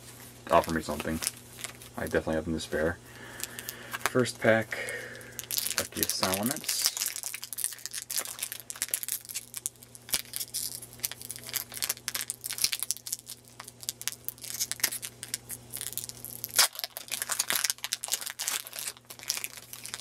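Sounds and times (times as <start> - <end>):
foil wrapper crinkling and tearing: 0.5 - 2.3, 3.2 - 20.0.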